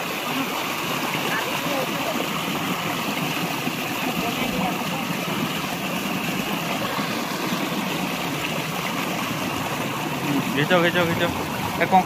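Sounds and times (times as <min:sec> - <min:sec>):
water rushing and splashing: 0:00.0 - 0:12.0.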